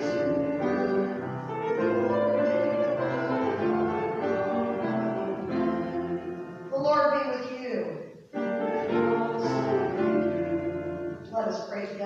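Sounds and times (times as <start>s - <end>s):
slow hymn on keyboard: 0.0s - 7.2s, 8.2s - 11.3s.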